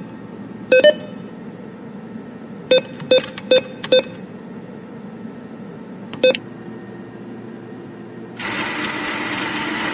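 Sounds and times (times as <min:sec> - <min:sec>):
faint hum: 0:00.0 - 0:08.4
cash dispenser whirring: 0:08.4 - 0:09.9.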